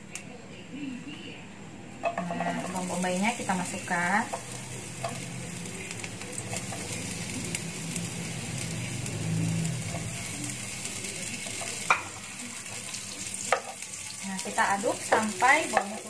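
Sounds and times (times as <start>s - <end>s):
onion sizzling in oil: 2.0s - 16.0s.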